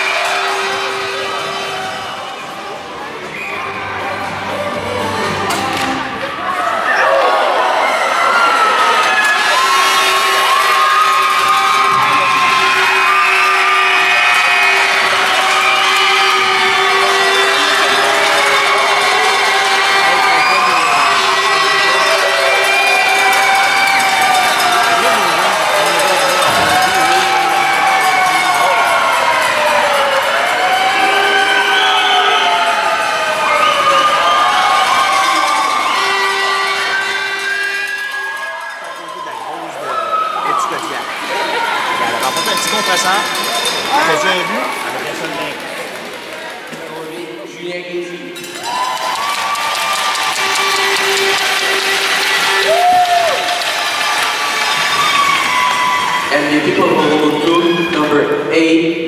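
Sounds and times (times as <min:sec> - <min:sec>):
crowd chatter: 0:00.0 - 0:59.0
crowd cheering and chanting: 0:00.0 - 0:59.0
steady held horn tone: 0:35.5 - 0:38.0.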